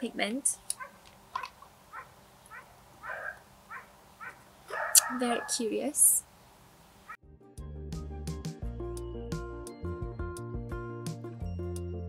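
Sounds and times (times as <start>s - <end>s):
dog barking: 0.8s - 1.0s, 1.9s - 5.6s.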